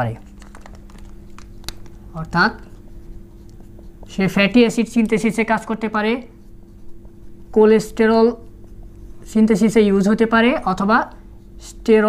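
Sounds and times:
steady low hum: 0.0 - 12.0
marker scratching on whiteboard: 1.6 - 11.7.

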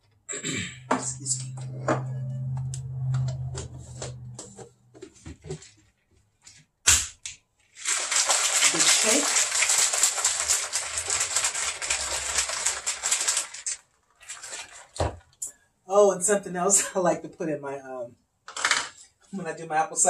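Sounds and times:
shaker bottle sloshing: 7.8 - 15.4.

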